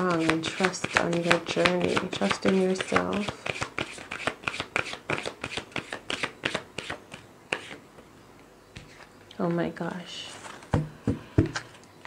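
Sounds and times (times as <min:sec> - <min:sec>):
cards being shuffled: 0:00.0 - 0:07.8.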